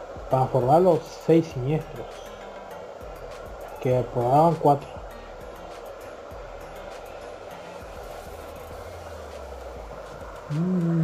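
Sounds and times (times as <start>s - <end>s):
rushing background noise: 0.0s - 11.0s
low hum: 7.8s - 11.0s.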